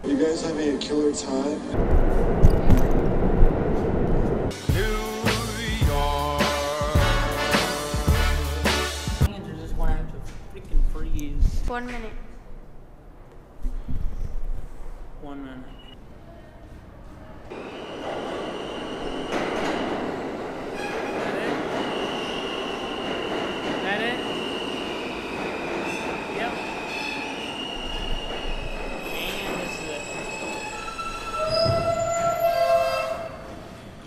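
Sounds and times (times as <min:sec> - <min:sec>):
subway train rumble: 0:00.0 - 0:15.2, 0:16.0 - 0:34.0
train wheel squeal: 0:17.6 - 0:19.8, 0:24.3 - 0:33.9.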